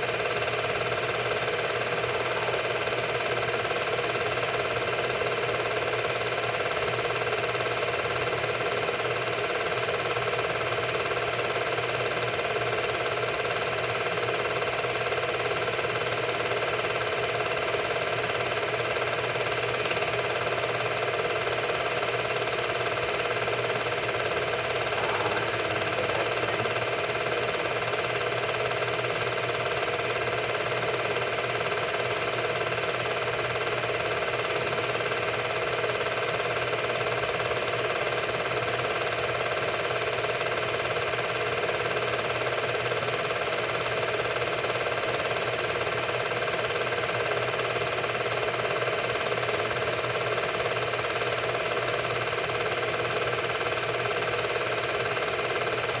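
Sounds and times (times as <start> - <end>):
film projector whirring: 0.0 - 56.0.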